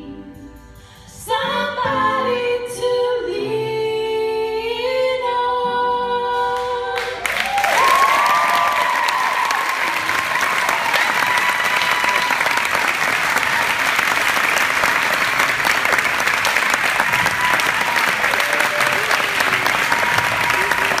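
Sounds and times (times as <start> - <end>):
audience applauding: 7.0 - 21.0
crowd voices: 9.1 - 21.0.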